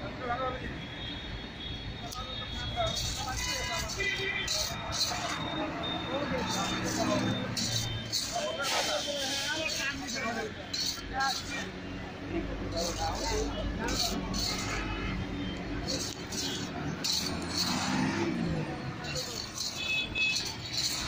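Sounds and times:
low traffic rumble: 1.9 - 21.0
people talking: 2.0 - 21.0
ladle scraping metal wok: 2.9 - 5.5, 6.3 - 11.7, 12.7 - 21.0.

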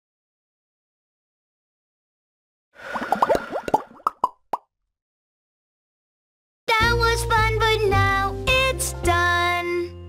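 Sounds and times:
cartoon bubble plops: 2.9 - 4.6.

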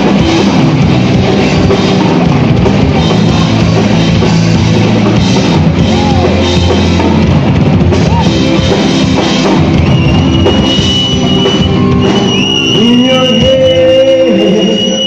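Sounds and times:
drum kit: 0.0 - 15.0
electric guitars: 0.0 - 15.0.

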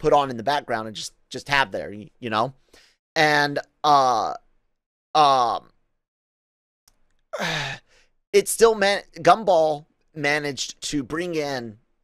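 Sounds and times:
man talking: 0.0 - 2.6, 3.2 - 4.4, 5.2 - 5.6, 8.4 - 11.8
man's breathy vocal sound: 7.4 - 8.1.

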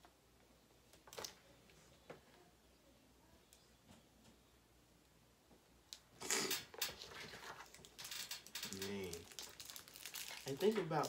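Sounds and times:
plastic packaging crinkling: 6.8 - 11.0.

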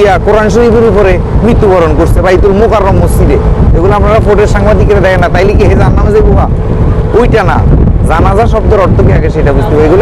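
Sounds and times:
boat engine rumble: 0.0 - 10.0
man talking: 0.0 - 10.0.

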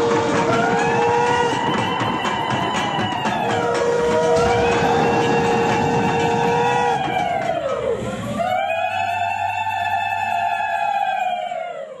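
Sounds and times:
long held note bending downward: 3.6 - 12.0.

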